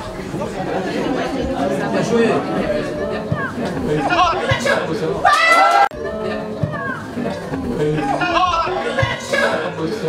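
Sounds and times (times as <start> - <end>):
spectators talking: 0.0 - 10.0.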